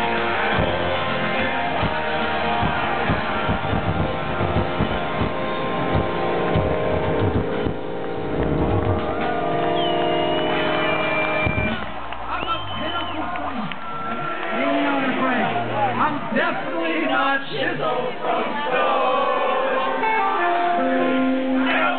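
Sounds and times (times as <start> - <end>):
punk rock band playing: 0.0 - 12.1
crowd shouting and cheering: 0.0 - 21.9.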